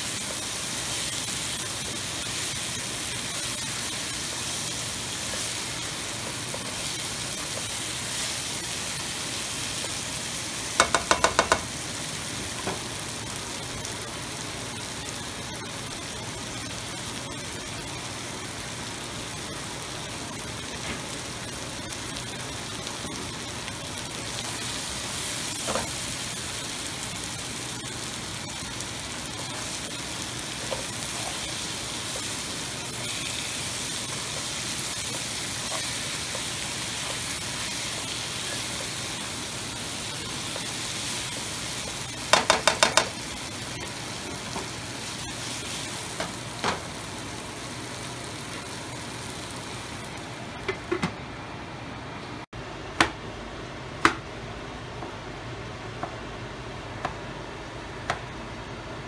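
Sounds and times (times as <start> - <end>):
chicken sizzling in oil: 0.0 - 50.7.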